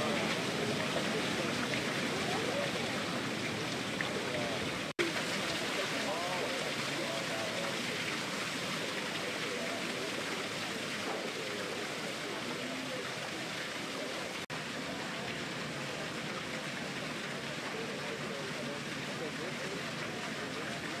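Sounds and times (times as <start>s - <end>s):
faint voices: 0.0s - 21.0s
fountain water splashing: 0.0s - 21.0s.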